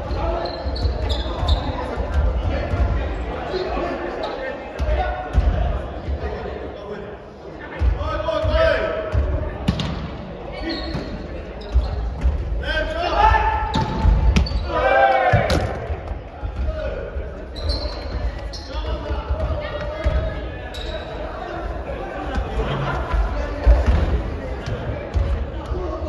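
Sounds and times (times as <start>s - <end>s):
players shouting: 12.6s - 16.0s.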